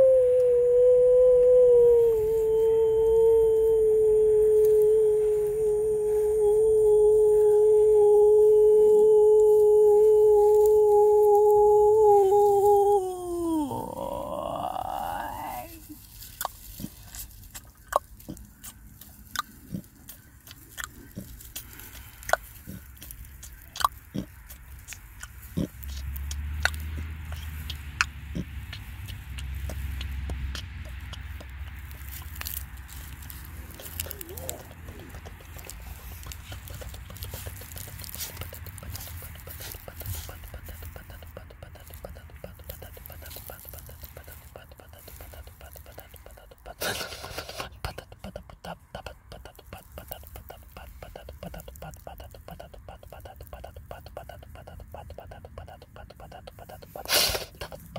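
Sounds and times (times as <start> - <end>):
person whispering without words: 0.0 - 16.1, 28.8 - 57.9
low steady hum: 0.0 - 57.9.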